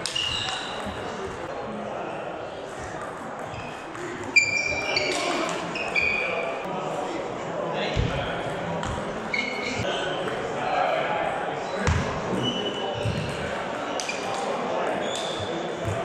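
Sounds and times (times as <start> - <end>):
echoing background chatter: 0.0 - 16.0
shoes squeaking on wooden floor: 3.5 - 6.4, 9.3 - 9.9.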